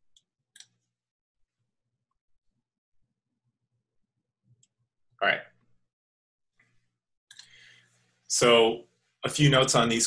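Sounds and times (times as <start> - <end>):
man speaking: 5.2 - 5.6, 8.3 - 10.0
faint clicks: 7.3 - 7.6.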